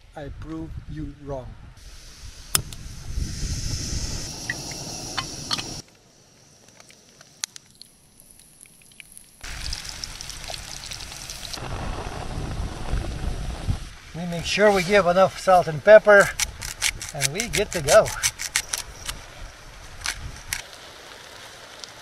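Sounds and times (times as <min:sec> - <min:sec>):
gas stove hissing: 0:01.8 - 0:05.8.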